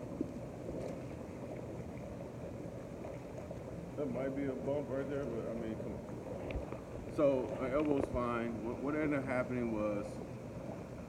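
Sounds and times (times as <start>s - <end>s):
churning water from jets: 0.0s - 11.0s
pump noise: 0.0s - 11.0s.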